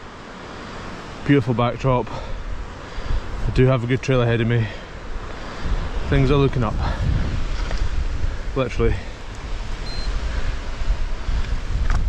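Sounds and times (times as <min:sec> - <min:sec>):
wind buffeting microphone: 0:00.8 - 0:12.0.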